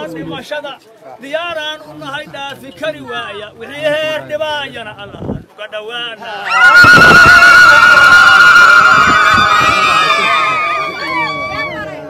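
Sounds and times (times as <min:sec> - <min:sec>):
crowd ululating: 0:06.3 - 0:12.0.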